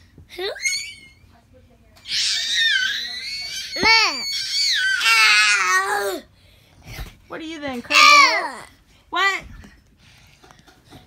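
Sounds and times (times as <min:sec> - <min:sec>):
child squealing: 0:00.4 - 0:01.2, 0:02.0 - 0:06.2.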